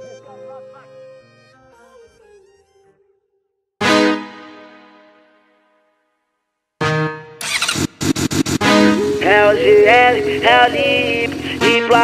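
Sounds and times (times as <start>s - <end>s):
motorcycle engine revving: 7.4s - 12.0s.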